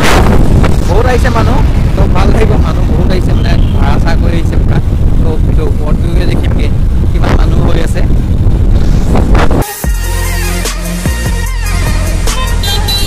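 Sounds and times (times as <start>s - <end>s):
wind buffeting and road noise: 0.0s - 9.7s
man talking: 0.8s - 8.2s.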